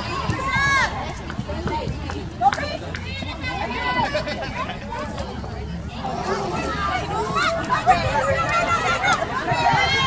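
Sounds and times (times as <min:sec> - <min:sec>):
background noise: 0:00.0 - 0:10.0
voices shouting: 0:06.0 - 0:10.0.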